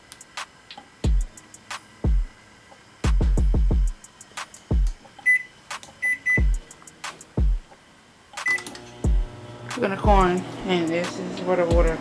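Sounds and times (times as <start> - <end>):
music with bass drum: 1.0 - 2.3, 3.0 - 5.0, 6.4 - 7.6, 8.4 - 9.3, 10.0 - 10.4, 11.1 - 12.0
microwave keypad beeps: 5.2 - 6.5, 8.4 - 8.7.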